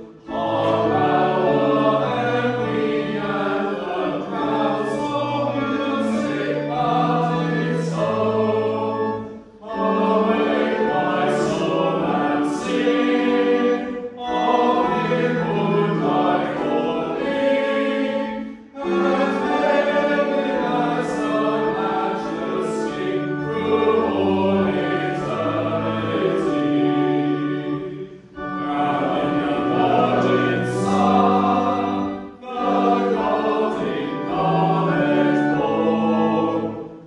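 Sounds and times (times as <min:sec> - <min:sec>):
congregation singing a hymn: 0:00.0 - 0:37.0
organ chords: 0:00.0 - 0:37.0.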